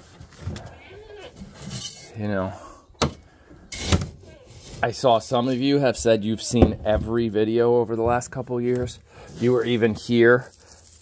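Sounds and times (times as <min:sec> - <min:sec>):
scoop rustling in grain bin: 0:09.3 - 0:11.0.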